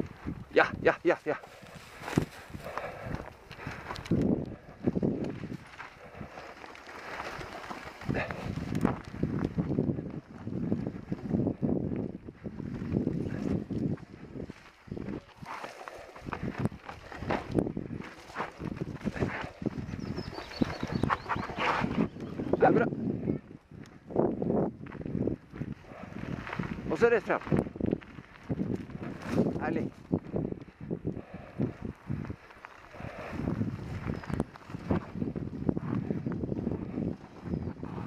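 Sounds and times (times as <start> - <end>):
bike rattling: 1.4 - 22.6.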